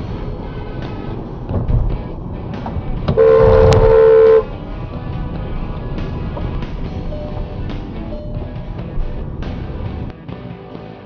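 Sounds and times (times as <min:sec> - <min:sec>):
background music: 0:00.0 - 0:11.0
car horn blast: 0:03.1 - 0:04.6.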